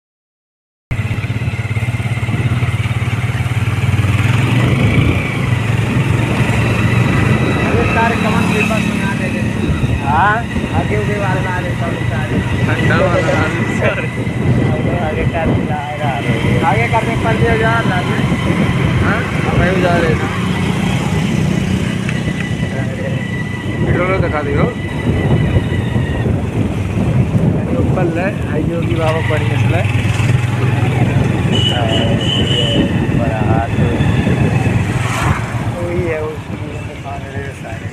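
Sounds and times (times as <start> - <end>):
motorcycle engine running: 0.9 - 35.2
road and wind noise: 0.9 - 37.9.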